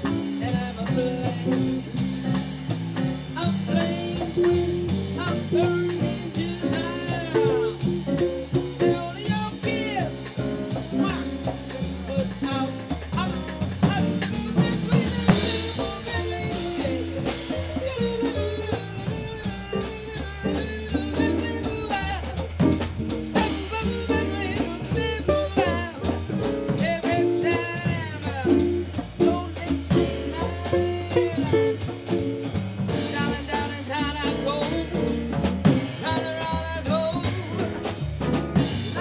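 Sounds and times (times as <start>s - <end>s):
bass line: 0.0s - 39.0s
drum kit played with sticks: 0.0s - 39.0s.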